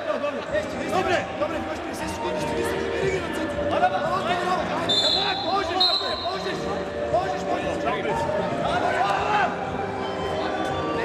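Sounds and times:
referee whistle blasts: 4.9s - 6.5s.

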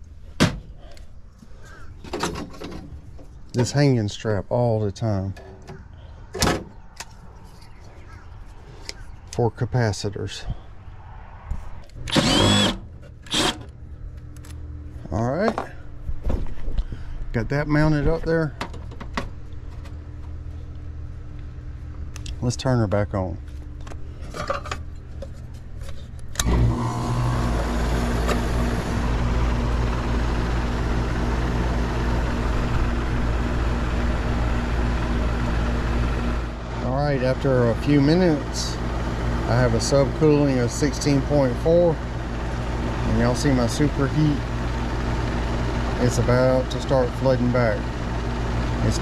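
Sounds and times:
air conditioner unit humming: 0.0s - 7.5s, 12.1s - 49.0s
impact driver whining: 12.0s - 13.7s, 26.4s - 33.2s.

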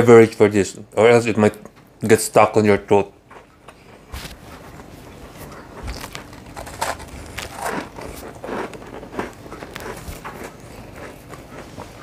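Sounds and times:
chewing dry biscuit: 3.3s - 12.0s.

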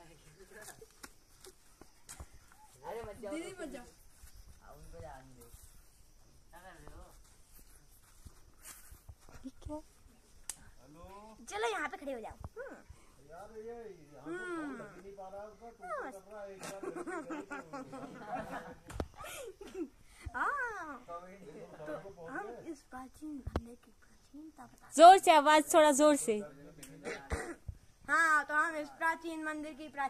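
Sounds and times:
person clearing throat: 27.0s - 27.6s.

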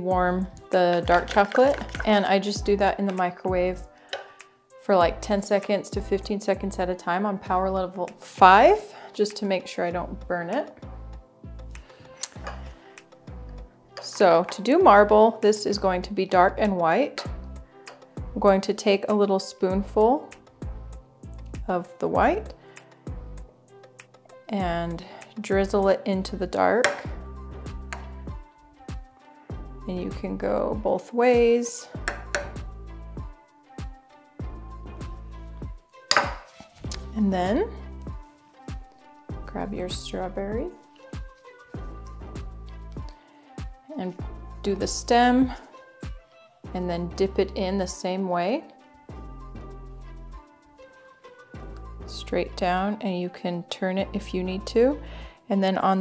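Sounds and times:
soft low music notes: 0.0s - 56.0s.

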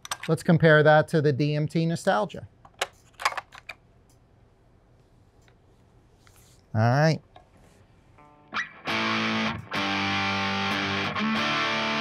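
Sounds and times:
guitar handling clicks and knocks: 0.0s - 0.4s.

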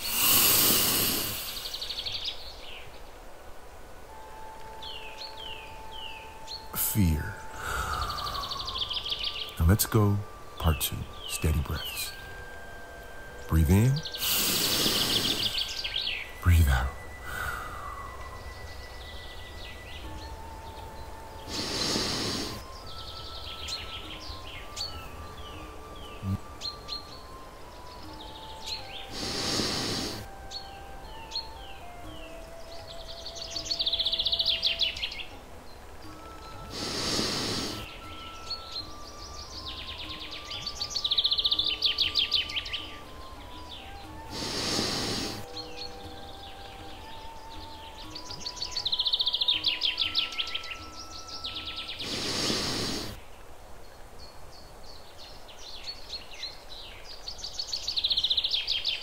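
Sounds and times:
recorded birdsong: 0.0s - 59.0s
slow soft melody: 0.0s - 59.0s.

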